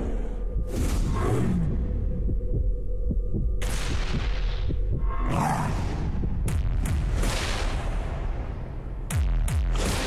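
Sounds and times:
low throbbing rumble: 0.0 - 7.2.

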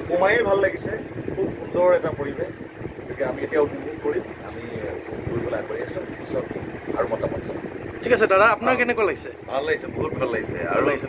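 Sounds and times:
man talking: 0.0 - 11.0
wind rumbling on microphone: 0.0 - 11.0.

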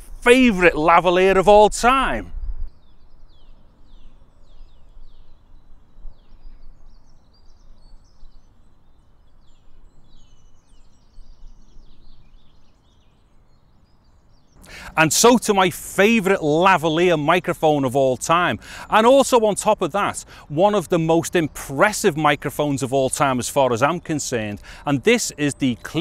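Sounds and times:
small birds chirping: 1.5 - 26.0.

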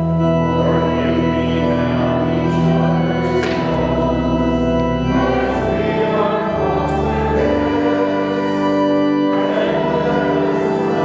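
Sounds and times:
church organ chords: 0.0 - 11.0
hymn singing: 0.0 - 11.0.

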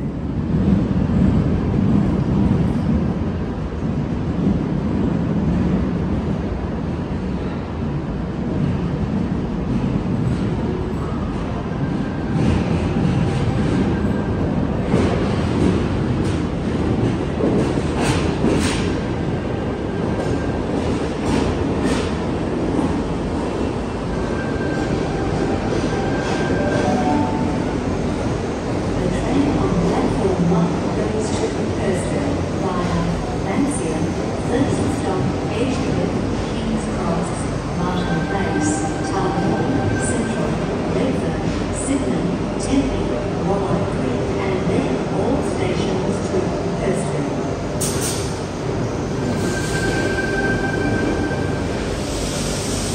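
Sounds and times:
electric train rumble: 0.0 - 52.9.

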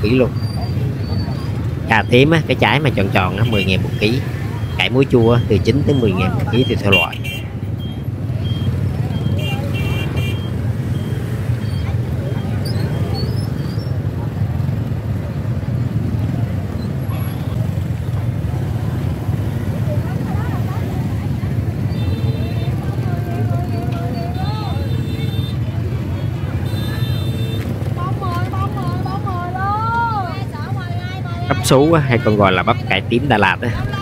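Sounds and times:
motorbike engines rumbling: 0.0 - 34.0
people talking and calling out: 0.0 - 34.0.

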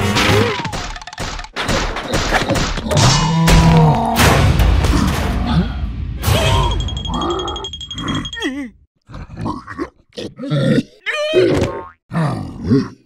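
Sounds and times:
cartoon character grunts and squeals: 9.3 - 13.0.

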